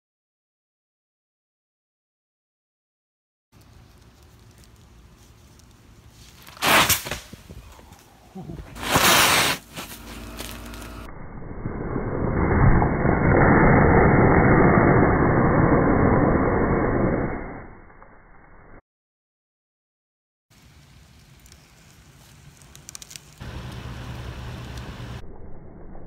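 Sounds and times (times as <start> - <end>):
liquid nitrogen boiling hiss: 20.5 - 25.2.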